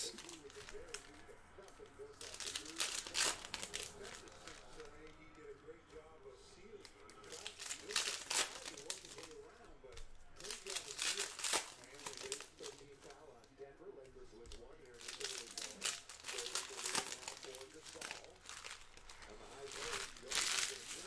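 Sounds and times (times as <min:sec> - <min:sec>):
foil wrappers crinkling: 0:00.0 - 0:05.3, 0:06.8 - 0:13.5, 0:14.3 - 0:21.0.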